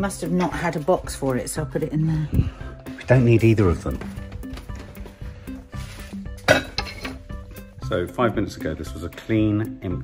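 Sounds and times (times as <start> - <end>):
soft background music: 0.0 - 10.0
glass items clinking: 6.4 - 7.5.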